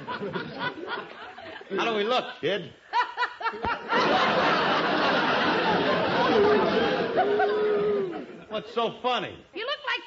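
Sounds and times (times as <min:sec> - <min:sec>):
studio audience laughing: 0:00.0 - 0:02.2, 0:03.0 - 0:08.5.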